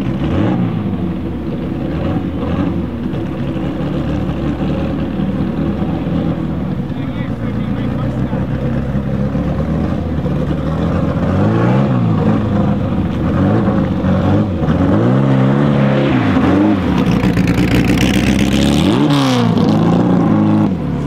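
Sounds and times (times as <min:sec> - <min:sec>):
sports car engine accelerating hard: 0:00.0 - 0:21.0.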